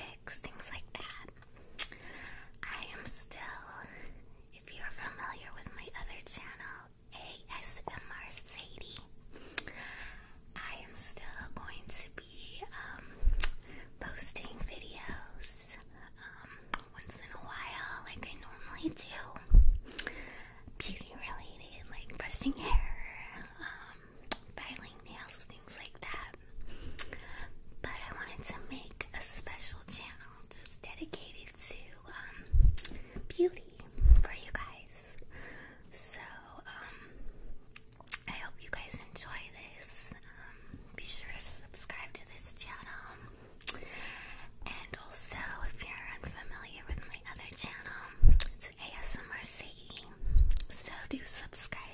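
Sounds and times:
woman whispering: 0.0 - 1.4, 2.6 - 9.2, 10.5 - 19.8, 20.8 - 26.5, 27.8 - 32.6, 33.2 - 35.3, 35.9 - 37.0, 38.2 - 43.3, 44.6 - 51.9.

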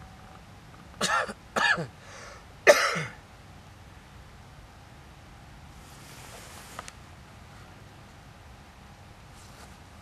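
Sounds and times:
man coughing: 1.0 - 1.9, 2.7 - 3.2.

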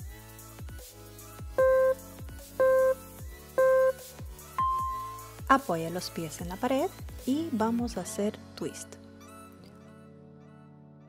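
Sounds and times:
countdown timer beeps: 1.6 - 3.0, 3.6 - 4.0, 4.6 - 5.4
electronic music with steady beat: 1.6 - 5.5.

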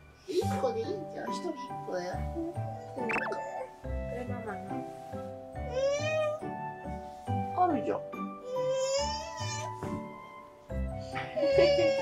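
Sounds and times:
toddler whining and crying: 5.6 - 6.6, 8.4 - 10.2, 11.2 - 12.0.

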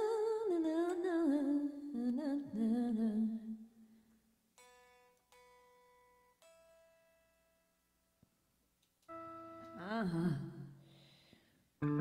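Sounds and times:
woman singing wordless phrase: 0.0 - 3.6, 9.8 - 10.7.

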